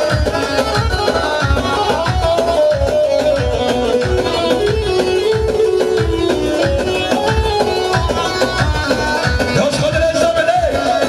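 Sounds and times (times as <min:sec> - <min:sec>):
sustained melody line: 0:00.0 - 0:10.9
steady drum beat: 0:00.0 - 0:11.0.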